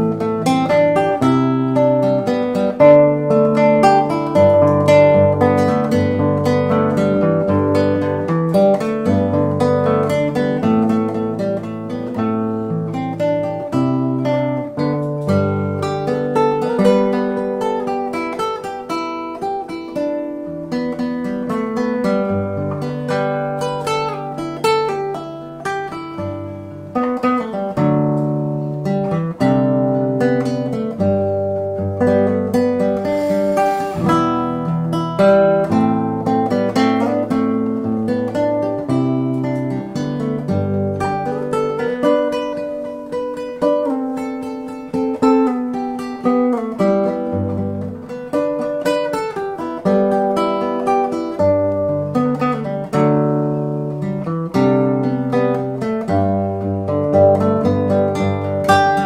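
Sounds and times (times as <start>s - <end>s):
fingerpicked classical guitar: 0.0s - 59.0s.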